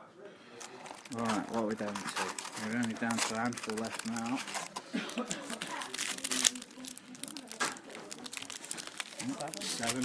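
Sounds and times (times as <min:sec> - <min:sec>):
faint voices: 0:00.0 - 0:10.0
foil wrapper crinkling and tearing: 0:00.6 - 0:10.0.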